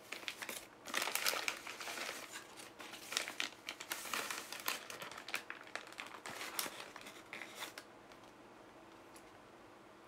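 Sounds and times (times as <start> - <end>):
paper wrapper crinkling: 0.0 - 8.3.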